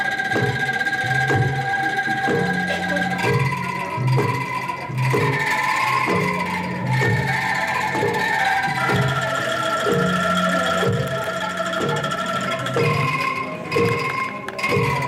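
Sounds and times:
bamboo angklung melody: 0.0s - 15.0s.

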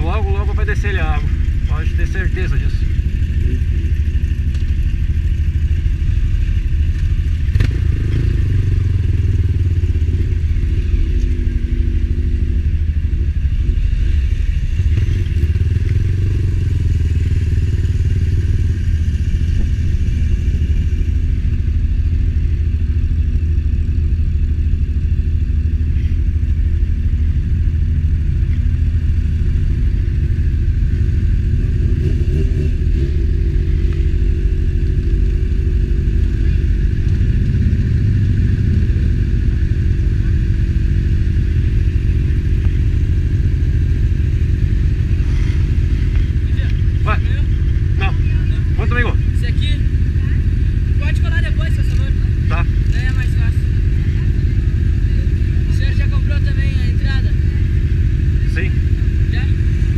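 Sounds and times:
loud low rumble: 0.0s - 59.9s
motorcycle engine running: 0.0s - 59.9s.

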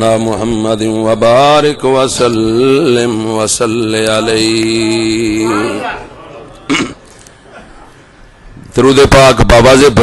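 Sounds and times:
hall room noise: 0.0s - 10.0s.

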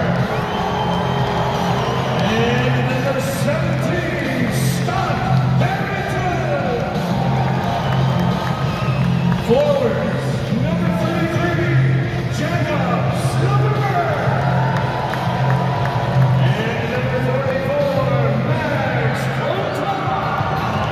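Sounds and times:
crowd cheering and whooping: 0.0s - 3.1s, 6.8s - 9.6s, 14.0s - 17.0s, 19.4s - 20.9s
music over loudspeakers: 0.0s - 20.9s.

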